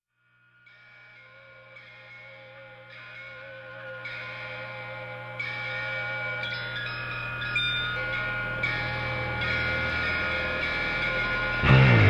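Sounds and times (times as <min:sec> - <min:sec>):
held electric guitar notes: 0:03.7 - 0:12.0.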